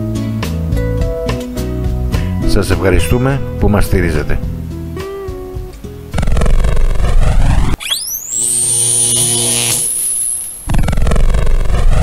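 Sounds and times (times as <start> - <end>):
electronic music: 6.1 - 12.0
high whistle-like tone: 7.3 - 10.7.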